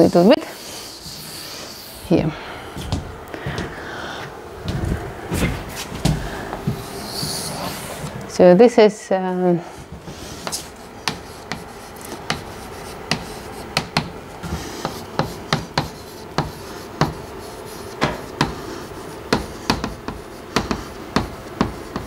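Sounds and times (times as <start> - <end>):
chalk writing on blackboard: 0.0 - 2.0, 6.7 - 8.0, 10.1 - 22.0.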